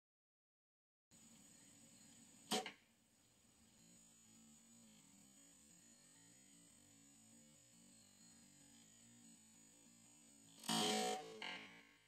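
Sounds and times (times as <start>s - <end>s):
faint high-pitched whine: 1.2s - 12.0s.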